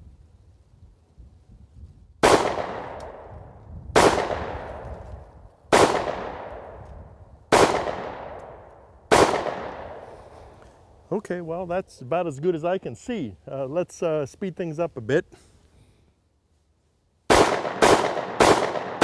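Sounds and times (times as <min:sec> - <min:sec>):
pistol shots echoing: 0:02.2 - 0:03.3, 0:04.0 - 0:04.8, 0:05.7 - 0:06.8, 0:07.5 - 0:10.0, 0:17.3 - 0:19.0.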